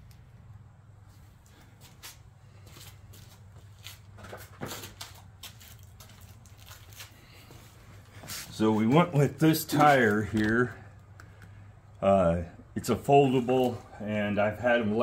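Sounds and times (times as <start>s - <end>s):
low steady hum: 0.0s - 4.1s.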